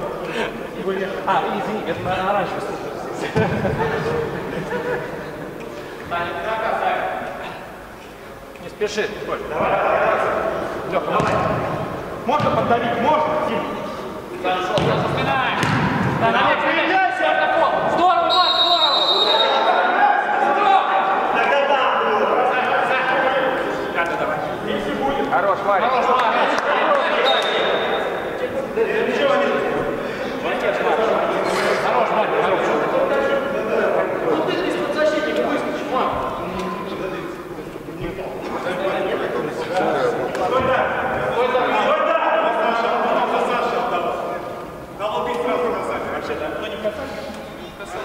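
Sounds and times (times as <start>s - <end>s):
ball kicked and bouncing: 15.6s - 16.1s
high whistle: 18.2s - 19.9s.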